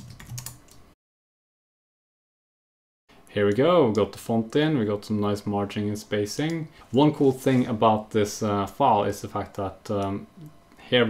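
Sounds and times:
computer keyboard typing: 0:00.0 - 0:00.8.

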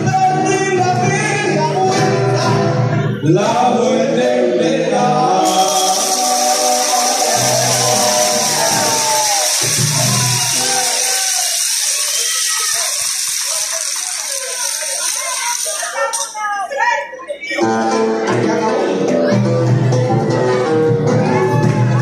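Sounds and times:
live band music: 0:00.0 - 0:03.4, 0:04.9 - 0:16.4, 0:17.6 - 0:22.0
person singing: 0:00.0 - 0:12.0, 0:17.5 - 0:22.0
guitar: 0:00.0 - 0:16.7, 0:17.3 - 0:22.0
steady high hiss: 0:05.5 - 0:16.1.

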